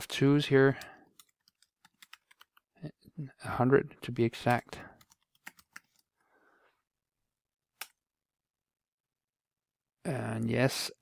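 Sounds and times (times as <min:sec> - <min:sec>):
computer keystrokes: 0:01.1 - 0:02.6, 0:05.0 - 0:06.0.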